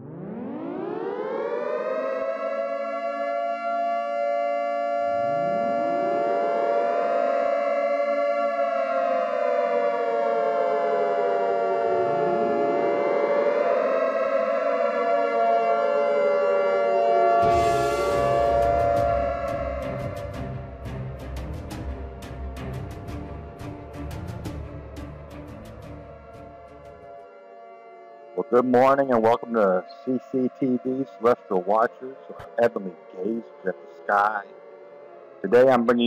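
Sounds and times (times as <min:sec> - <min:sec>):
air-raid siren wailing: 0:00.0 - 0:36.0.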